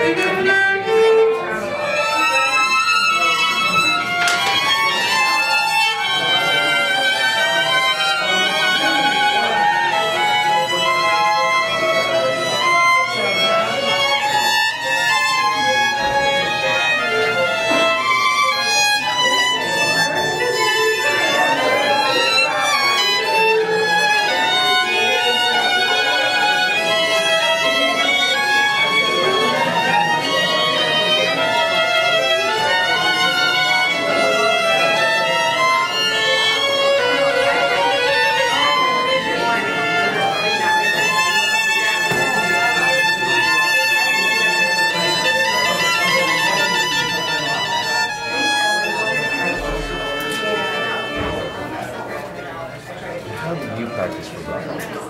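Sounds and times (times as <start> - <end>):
violin melody with vibrato: 0.0 - 54.8.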